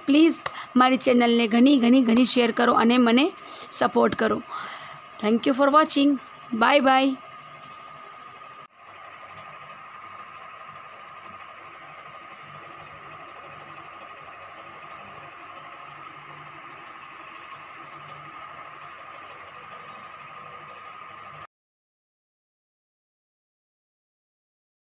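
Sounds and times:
constant high hum: 0.0s - 21.5s
steady hiss: 0.0s - 21.5s.

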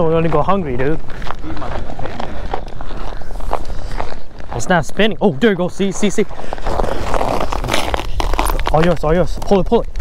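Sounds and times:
footsteps crunching through snow: 0.0s - 10.0s.

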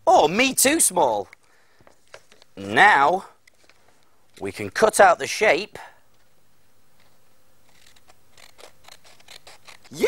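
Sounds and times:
scissors snipping card: 7.7s - 10.0s.

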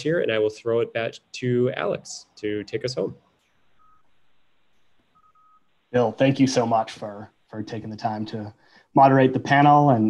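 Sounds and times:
faint electronic beeps: 0.9s - 8.8s.

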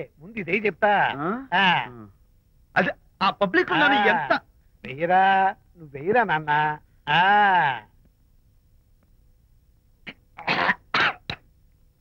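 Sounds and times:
man coughing: 10.4s - 11.3s.

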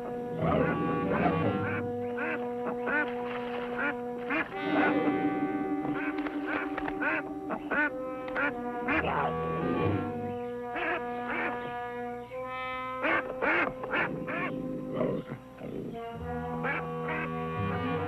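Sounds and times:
geese honking: 0.0s - 18.0s
orchestral music with held notes: 0.0s - 18.0s.

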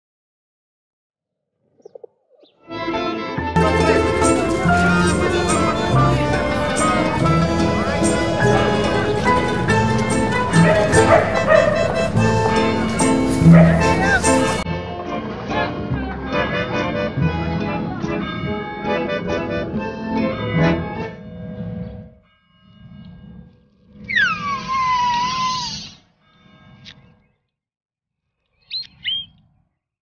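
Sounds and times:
cartoon background music: 2.6s - 21.2s
cartoon chick squawk: 24.1s - 26.0s.

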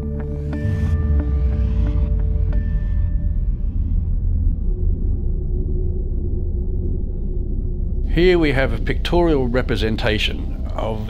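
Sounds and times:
deep low rumble drone: 0.0s - 11.0s
music: 0.0s - 11.0s.

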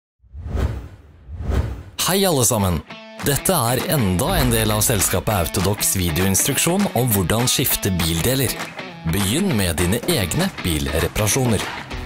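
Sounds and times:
whoosh sound effect: 0.3s - 2.0s, 4.2s - 5.1s
low rumble: 4.2s - 5.1s.

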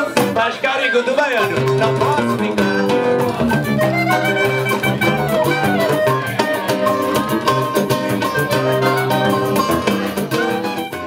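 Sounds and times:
pandeiro rhythm: 0.0s - 11.0s
strummed cavaquinho and guitar: 0.0s - 11.0s
clarinet: 2.8s - 11.0s.

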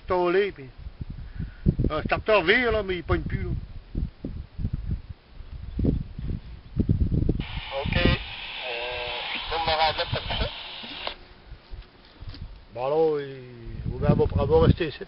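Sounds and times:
low rumbling bursts: 7.3s - 11.1s
man speaking over two-way radio: 7.6s - 11.2s.

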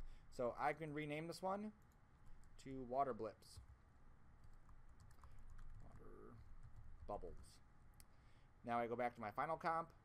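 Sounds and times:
computer keyboard clicking: 4.4s - 6.9s.

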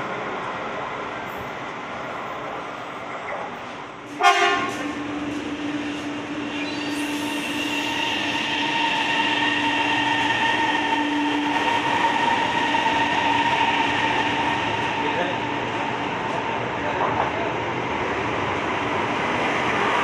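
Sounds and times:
train rolling noise: 0.0s - 20.0s
electric train whine: 4.0s - 20.0s.

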